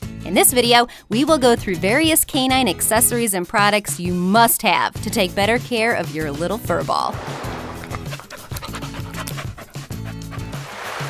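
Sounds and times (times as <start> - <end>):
background music: 0.0 - 11.0
dog panting: 7.6 - 11.0.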